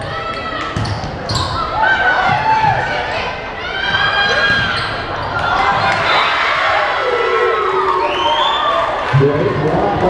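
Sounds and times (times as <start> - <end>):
spectators' voices: 0.0 - 10.0
athletic shoes squeaking: 0.8 - 1.7, 4.2 - 6.0.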